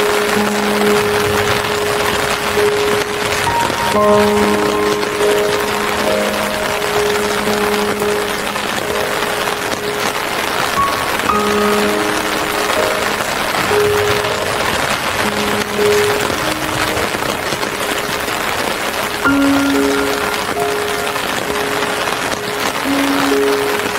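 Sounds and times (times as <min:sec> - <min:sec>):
falling rain hiss: 0:00.0 - 0:23.9
slow calm music: 0:00.0 - 0:23.9.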